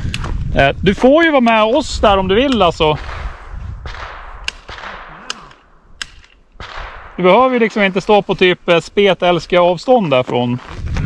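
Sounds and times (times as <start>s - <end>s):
distant gunshots: 3.0s - 8.0s.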